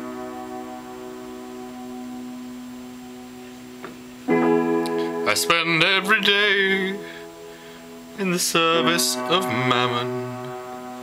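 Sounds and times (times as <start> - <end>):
held keyboard chord: 0.0 - 11.0.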